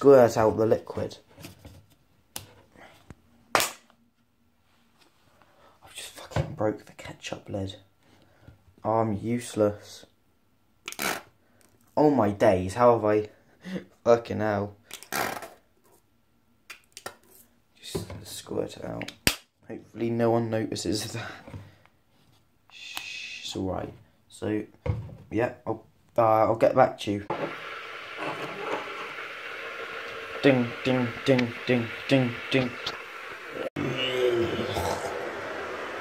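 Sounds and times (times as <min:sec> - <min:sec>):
water hissing in a hot pan: 0:27.3 - 0:36.0.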